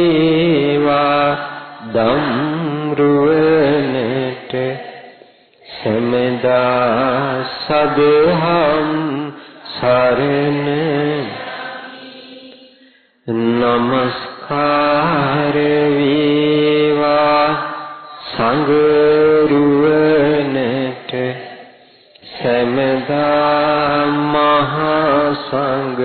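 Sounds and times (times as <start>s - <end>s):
monk chanting into microphone: 0.0s - 5.0s, 5.7s - 12.7s, 13.3s - 21.6s, 22.2s - 26.0s.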